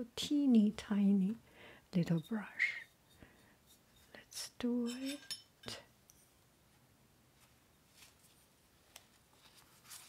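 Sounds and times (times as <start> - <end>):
woman's voice: 0.0 - 2.9, 4.3 - 5.8.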